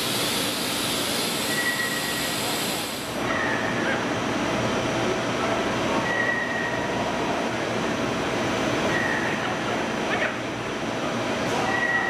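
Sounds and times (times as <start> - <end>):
high machine whine: 0.0 - 3.4
machine hum and hiss: 0.0 - 12.0.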